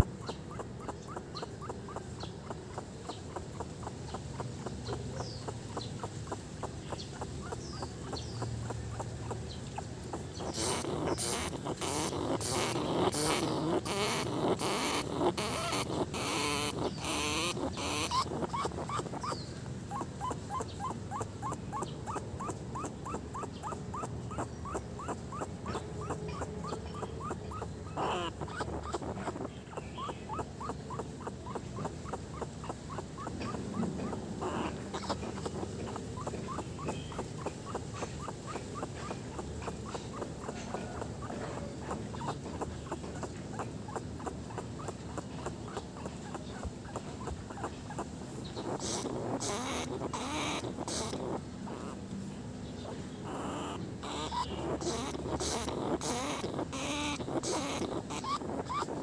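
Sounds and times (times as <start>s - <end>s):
rat making rhythmic sounds: 0.0s - 52.1s, 52.8s - 59.0s.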